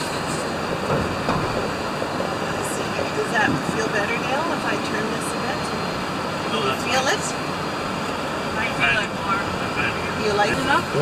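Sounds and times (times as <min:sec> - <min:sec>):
van tyre and engine rumble: 0:00.0 - 0:11.0.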